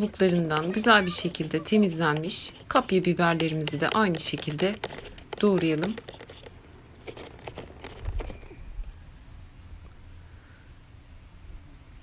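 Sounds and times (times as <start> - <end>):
knife chopping on plastic board: 0.0 - 8.0.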